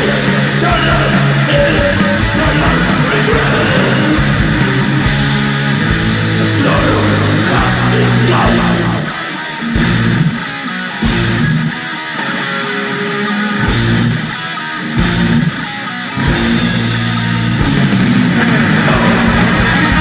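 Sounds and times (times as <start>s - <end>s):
bass guitar: 0.0s - 20.0s
distorted electric guitar riff: 0.0s - 20.0s
drums: 0.0s - 20.0s.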